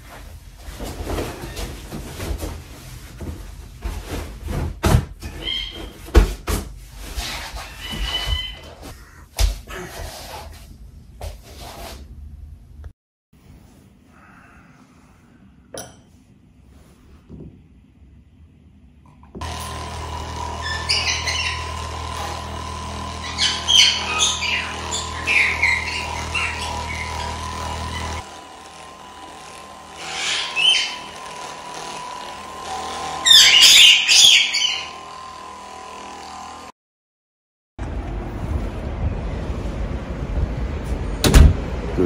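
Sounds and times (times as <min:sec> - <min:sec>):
massage gun humming and drumming: 0:19.4 - 0:36.7.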